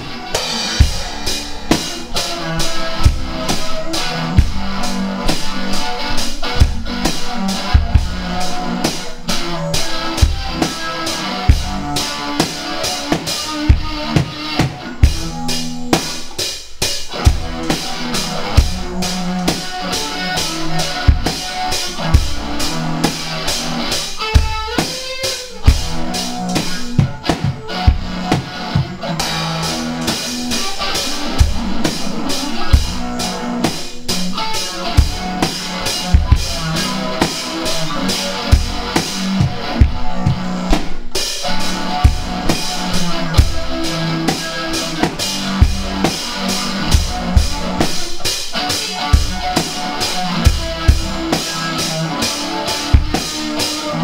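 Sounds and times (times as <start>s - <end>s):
bass guitar: 0.0s - 54.0s
drum kit beat: 0.0s - 54.0s
electric guitar: 0.0s - 54.0s.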